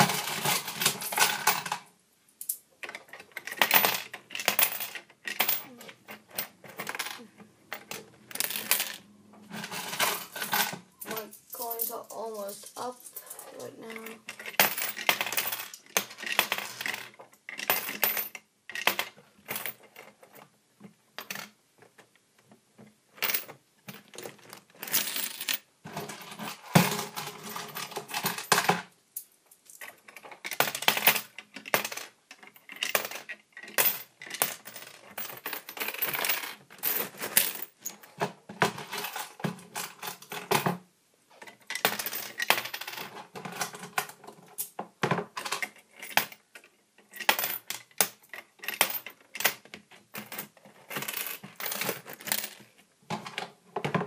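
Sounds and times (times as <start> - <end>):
coins clinking and clattering: 0.0 - 20.4, 23.2 - 40.8, 41.4 - 54.0.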